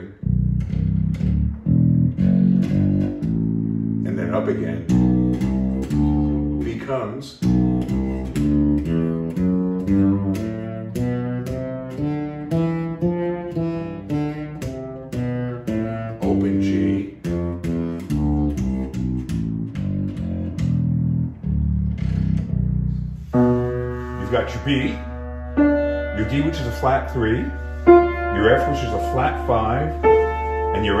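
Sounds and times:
fretless electric bass notes: 0:00.0 - 0:31.0
piano chord: 0:23.3 - 0:31.0.

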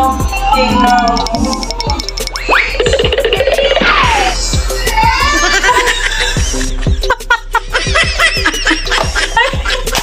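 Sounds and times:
background music with a beat: 0:00.0 - 0:10.0.

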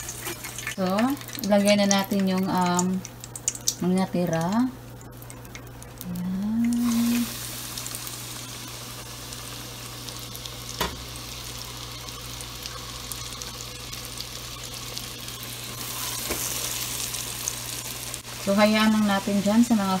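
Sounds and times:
chicken wings sizzling in oil: 0:00.0 - 0:20.0.

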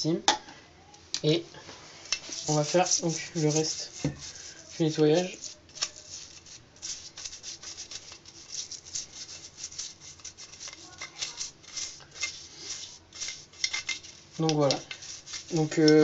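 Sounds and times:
toothbrush scrubbing: 0:02.1 - 0:16.0.

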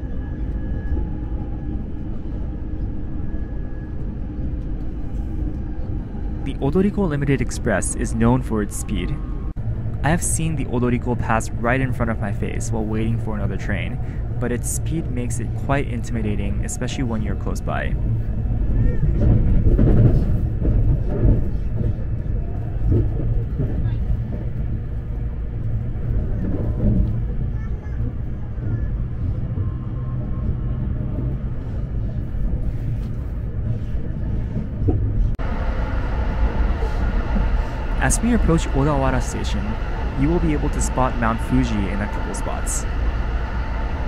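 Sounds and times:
train wheels rumbling on track: 0:04.6 - 0:44.0.

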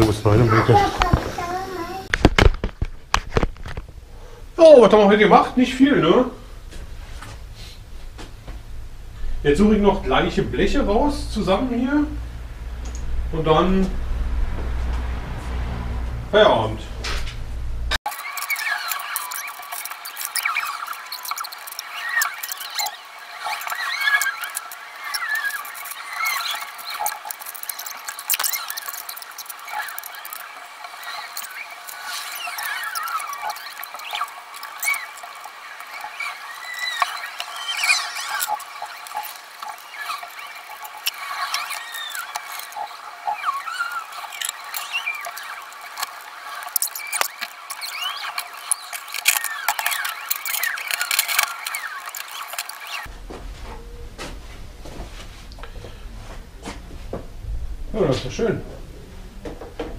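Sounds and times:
rapid high-pitched chirps and squeaks: 0:18.0 - 0:53.1
metal parts clattering: 0:18.1 - 0:42.9, 0:43.8 - 0:53.1.

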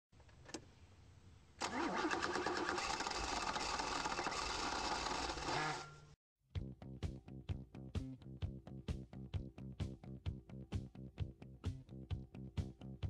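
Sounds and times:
car engine starting and running: 0:01.6 - 0:06.1.

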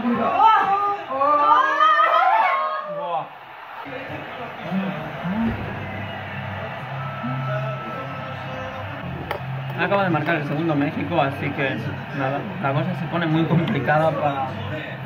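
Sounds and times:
background music: 0:03.5 - 0:15.0.

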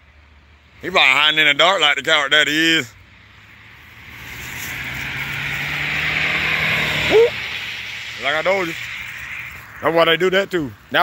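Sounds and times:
car approaching on road: 0:00.0 - 0:11.0.

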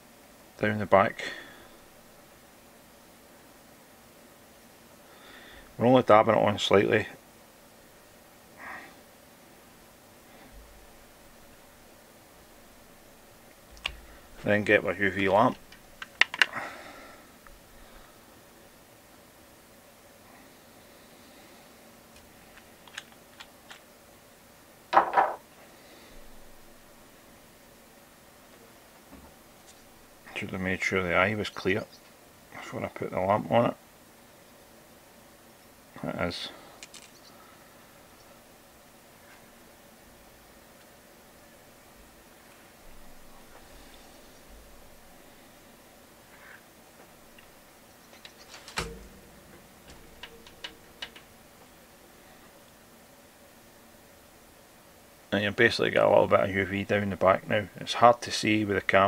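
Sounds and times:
small clicks and taps: 0:13.7 - 0:14.0, 0:15.6 - 0:16.5, 0:22.1 - 0:23.8, 0:48.1 - 0:51.3.

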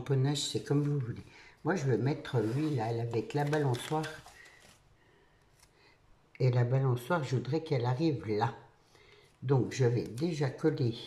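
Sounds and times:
paper rustling: 0:01.9 - 0:05.8.

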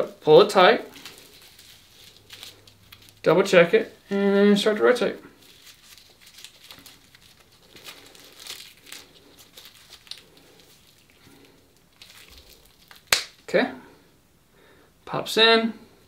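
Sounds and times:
tourniquet strap rustling and clicking: 0:00.9 - 0:03.3, 0:05.4 - 0:13.4.

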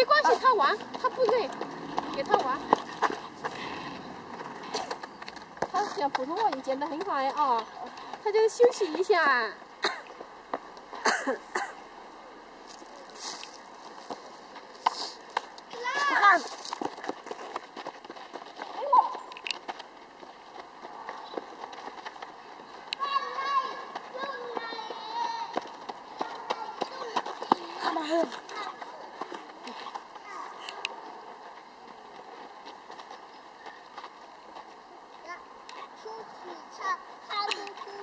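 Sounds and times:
children calling and shouting: 0:00.0 - 0:13.6, 0:14.2 - 0:19.4, 0:20.2 - 0:38.0.

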